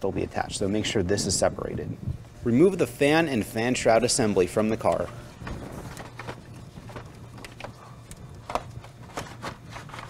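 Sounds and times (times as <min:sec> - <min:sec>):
faint steady hum: 0:00.0 - 0:10.0
plastic fan knocking and clicking: 0:04.9 - 0:10.0.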